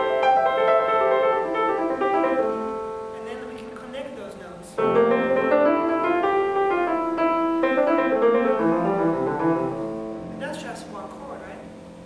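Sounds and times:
solo acoustic piano: 0.0s - 12.0s.

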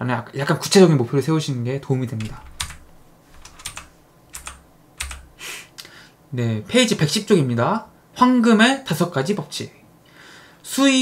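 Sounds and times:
faint low hum: 0.8s - 11.0s.

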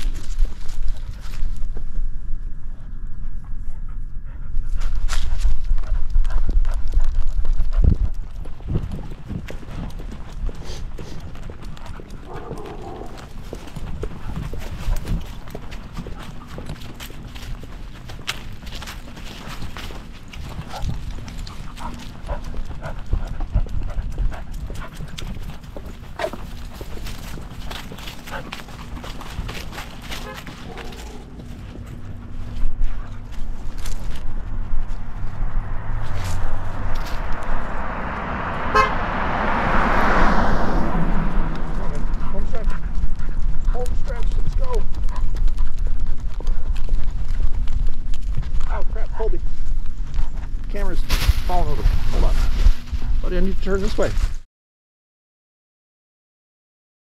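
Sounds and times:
footsteps on pavement: 0.0s - 1.9s, 4.4s - 54.4s
vehicle passing close by: 8.2s - 16.2s, 18.2s - 43.8s.

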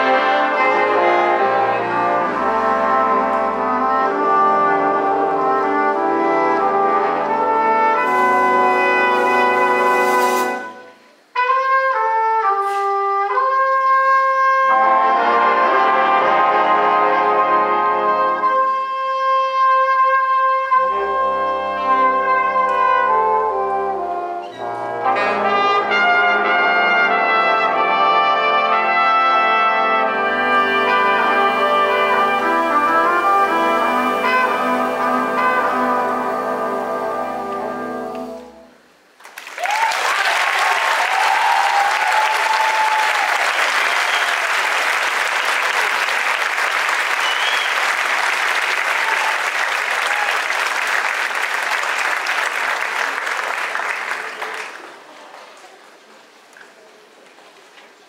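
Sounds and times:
jazz band playing: 0.0s - 38.9s.

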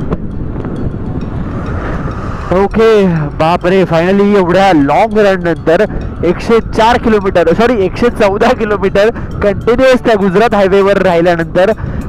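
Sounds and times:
wind rush: 0.0s - 12.0s
man talking: 2.5s - 11.8s.

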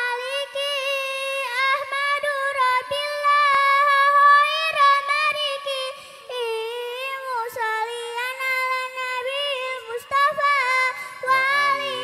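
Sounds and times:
girl singing into a microphone: 0.0s - 12.0s
lower voice singing: 9.5s - 12.0s.

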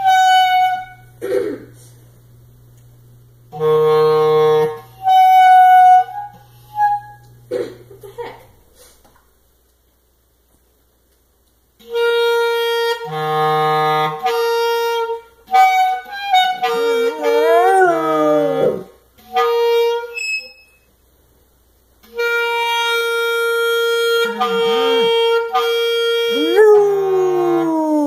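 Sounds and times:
clarinet long notes: 3.5s - 7.3s, 11.8s - 20.0s, 22.0s - 28.0s
dog howling: 16.9s - 18.9s, 26.3s - 28.0s.

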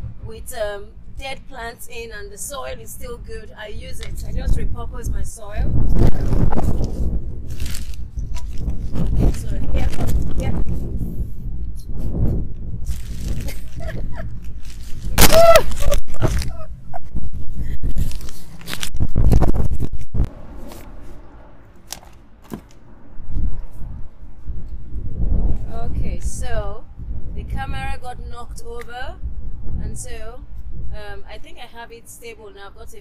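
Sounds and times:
wind buffeting microphone: 0.0s - 21.4s, 22.9s - 33.0s.

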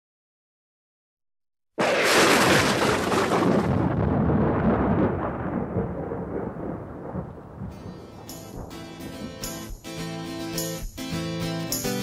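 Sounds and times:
deep thunder-like rumble: 1.8s - 9.4s
pitched musical notes: 7.7s - 12.0s.

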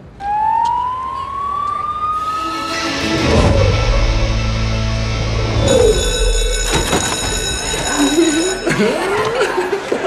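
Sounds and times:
siren wail rising in pitch: 0.0s - 4.7s.

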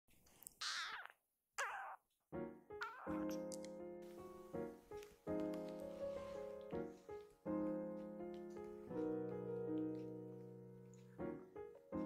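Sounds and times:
kitten meowing: 0.6s - 2.0s, 2.8s - 3.6s.

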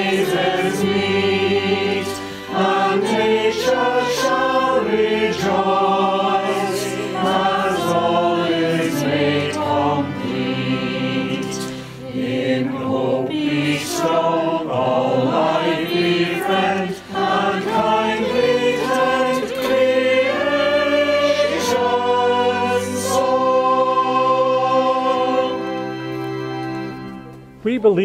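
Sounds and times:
choir singing a hymn: 0.0s - 27.3s.

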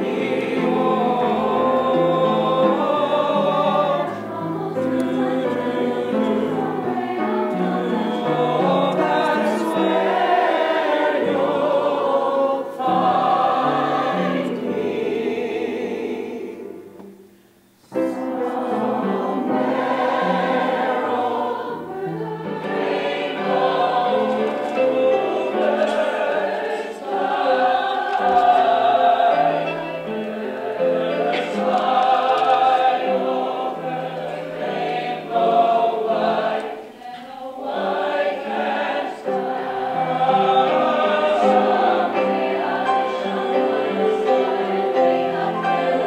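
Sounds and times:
mixed choir singing in harmony: 0.0s - 46.0s.

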